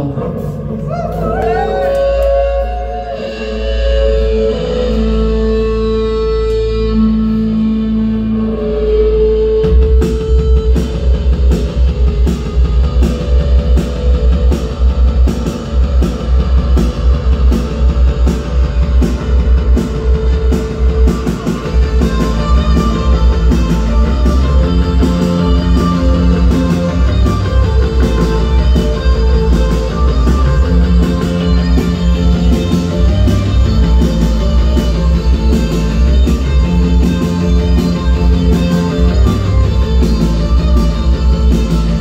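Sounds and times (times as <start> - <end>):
live rock band playing: 0.0 - 42.0.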